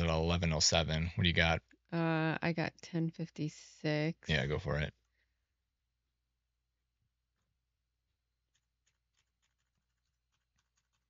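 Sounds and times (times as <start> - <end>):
low steady hum: 0.0 - 1.6, 4.3 - 4.9.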